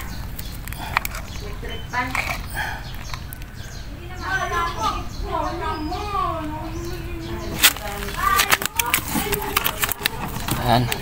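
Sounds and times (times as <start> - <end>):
voices: 0.0 - 11.0
plastic wrapping crinkling: 7.5 - 11.0.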